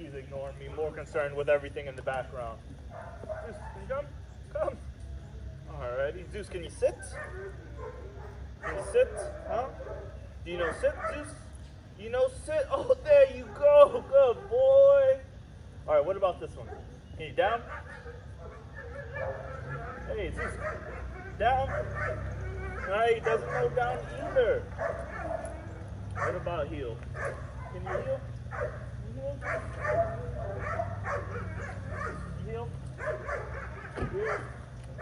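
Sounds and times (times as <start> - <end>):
dog whining: 17.7 - 24.1, 29.4 - 32.4
dog whimpering: 29.4 - 32.3.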